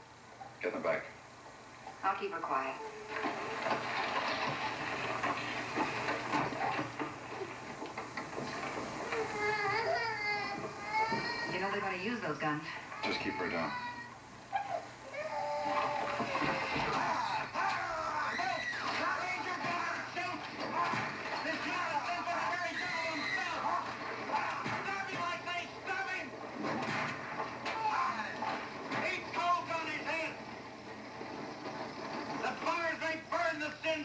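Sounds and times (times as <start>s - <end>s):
man speaking on television: 0.6s - 1.2s, 11.0s - 14.0s, 16.7s - 34.0s
infant crying through tv speaker: 9.0s - 11.8s, 12.8s - 20.1s, 20.8s - 25.0s
steady noise: 16.4s - 34.0s.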